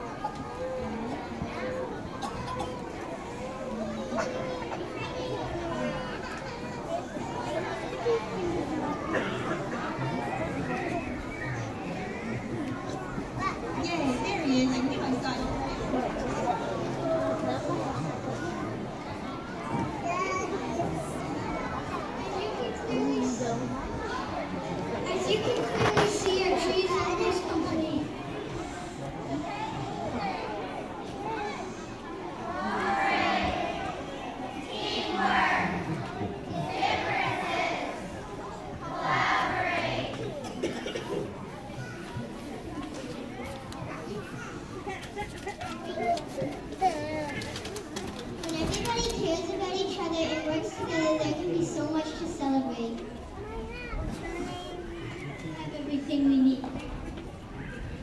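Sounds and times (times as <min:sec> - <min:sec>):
children chattering and calling: 0:00.0 - 0:58.0.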